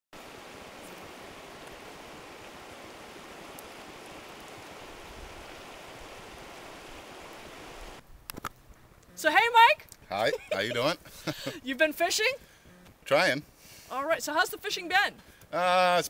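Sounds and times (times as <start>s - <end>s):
river water running over rocks: 0.2s - 8.0s.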